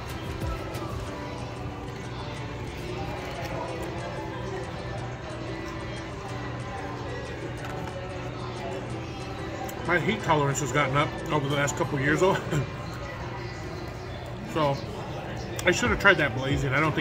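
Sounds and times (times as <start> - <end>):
background music with voice: 0.0 - 17.0.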